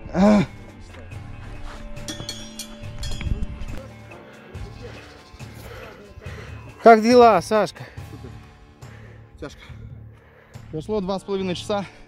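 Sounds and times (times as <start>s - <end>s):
background music with steady tones: 0.0s - 12.0s
trekking poles clinking on stone: 2.0s - 3.8s.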